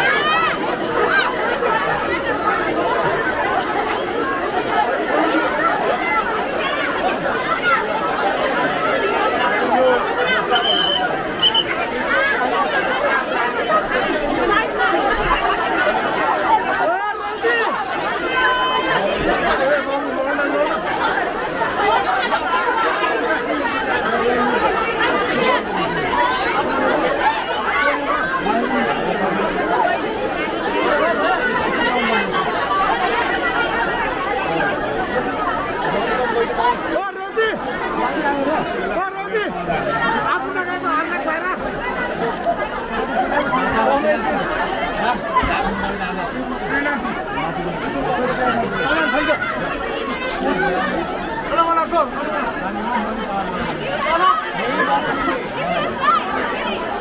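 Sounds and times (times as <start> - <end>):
crowd of women talking: 0.0 - 57.0.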